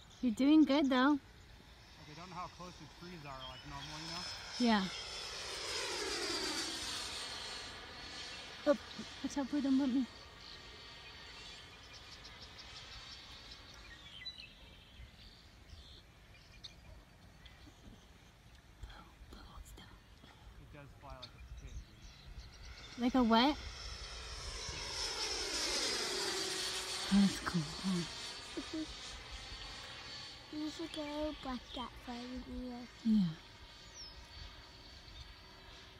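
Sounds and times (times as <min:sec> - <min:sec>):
model jet fan whining: 0:00.0 - 0:18.8, 0:20.3 - 0:35.9.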